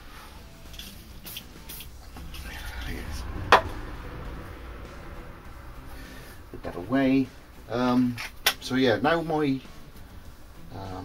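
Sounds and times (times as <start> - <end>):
man speaking: 2.3 - 3.5.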